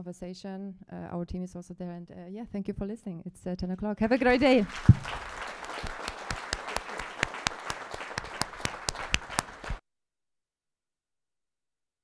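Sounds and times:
audience applauding: 0:04.1 - 0:09.8.

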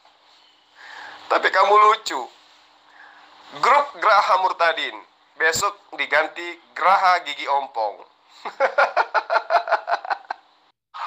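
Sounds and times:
man laughing: 0:08.4 - 0:10.5.

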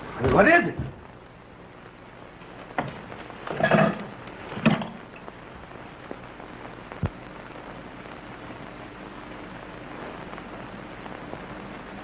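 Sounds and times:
old film soundtrack hiss: 0:00.0 - 0:12.0
knocks and thumps: 0:00.8 - 0:01.0, 0:02.8 - 0:05.0.

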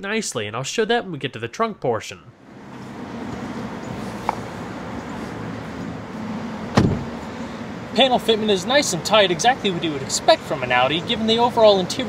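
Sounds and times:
car door shutting thump: 0:06.7 - 0:07.2
person climbing into car: 0:06.7 - 0:07.2.

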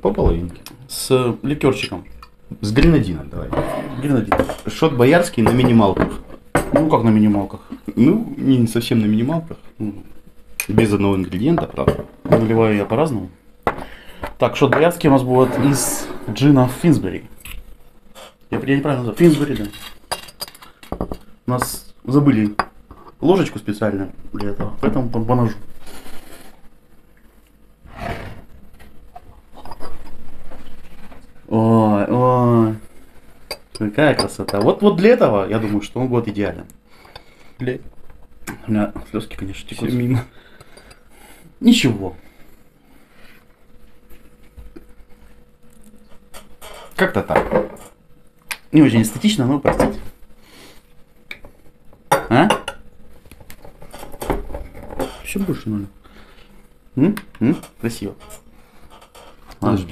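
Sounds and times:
faint small noises: 0:00.0 - 0:59.9.

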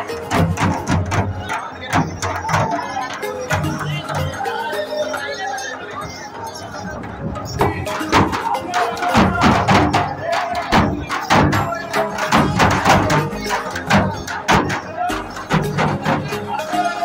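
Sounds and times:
barrel drums beaten with sticks: 0:00.0 - 0:04.4, 0:07.5 - 0:16.5
crowd voices: 0:00.0 - 0:17.0
pitched melody: 0:00.0 - 0:17.0.

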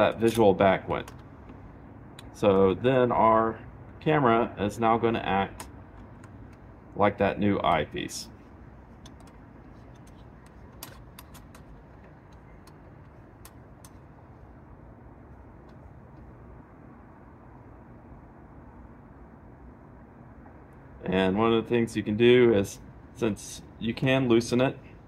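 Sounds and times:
distant road traffic hum: 0:00.0 - 0:25.0.

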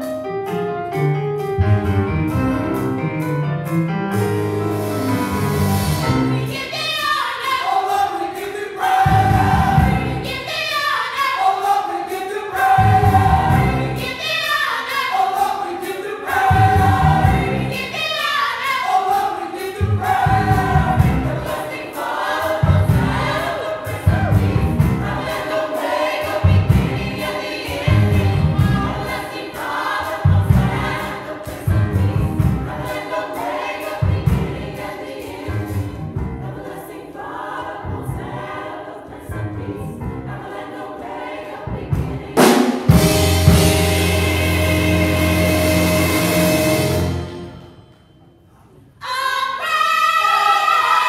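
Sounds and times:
gospel choir singing: 0:04.7 - 0:51.0.

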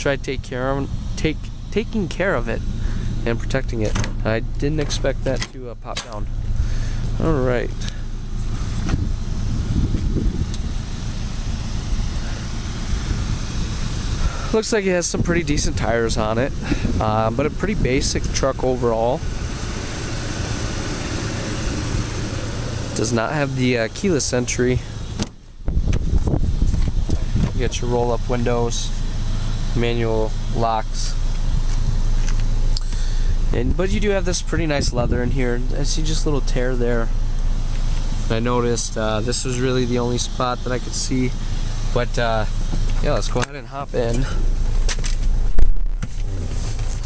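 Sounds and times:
vehicle engine idling: 0:00.0 - 0:47.0
wind buffeting microphone: 0:08.6 - 0:10.9, 0:25.6 - 0:27.7.

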